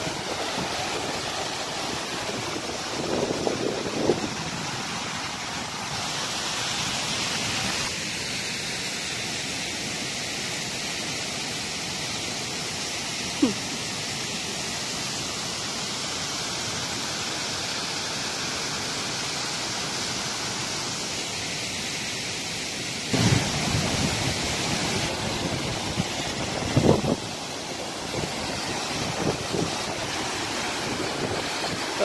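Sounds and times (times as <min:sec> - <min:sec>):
distant waterfall rushing: 0:00.0 - 0:32.0
wind buffeting microphone: 0:23.2 - 0:27.4.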